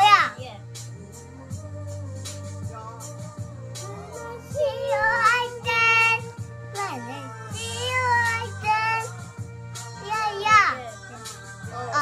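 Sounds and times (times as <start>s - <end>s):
music playing: 0.0s - 12.0s
child singing: 3.8s - 12.0s.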